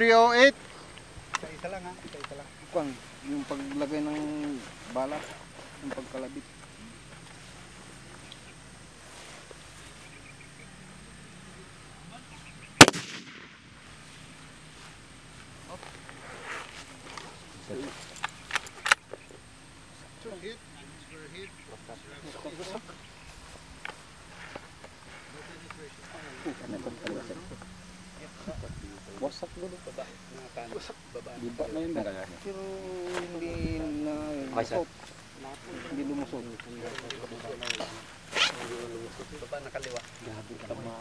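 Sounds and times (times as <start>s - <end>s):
scraping rustle: 0.0s - 10.2s, 13.8s - 19.2s, 22.2s - 27.6s, 32.0s - 41.0s
voices talking in background: 0.0s - 13.2s, 13.8s - 41.0s
rifle metallic clicks: 12.8s - 13.6s.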